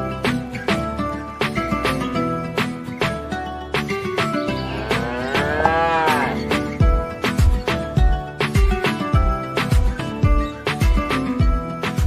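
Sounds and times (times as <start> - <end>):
background music: 0.0 - 12.0
cow mooing: 4.5 - 6.5.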